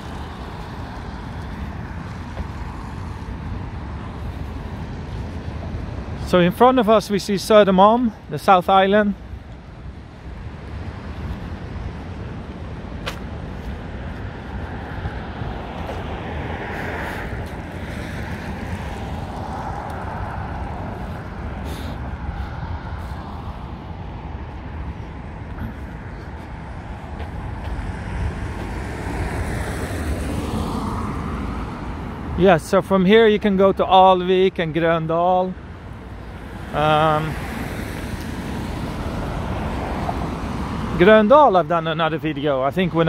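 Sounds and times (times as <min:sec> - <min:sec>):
road traffic rumble: 0:00.0 - 0:43.0
vehicles passing: 0:00.0 - 0:43.0.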